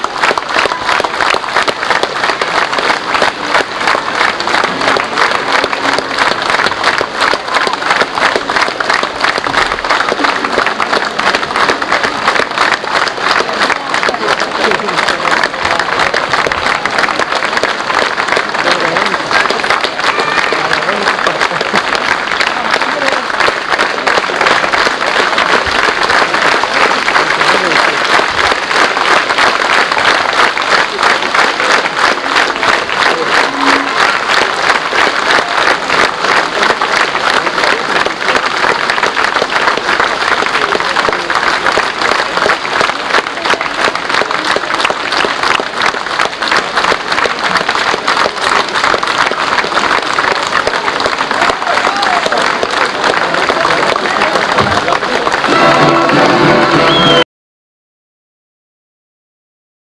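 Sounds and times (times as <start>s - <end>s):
audience applauding: 0.0s - 57.3s.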